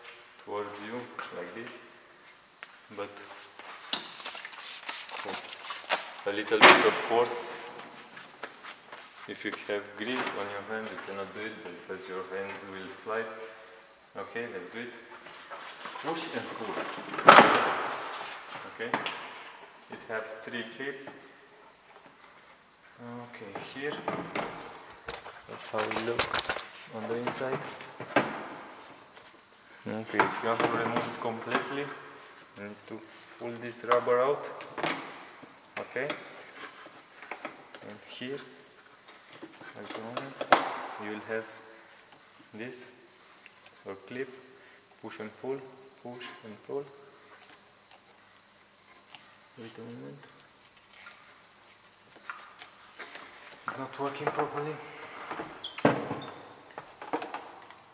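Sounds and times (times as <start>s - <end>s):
person speaking: 4.7s - 8.1s, 15.9s - 17.4s, 23.0s - 28.0s, 43.8s - 47.1s, 53.6s - 55.3s.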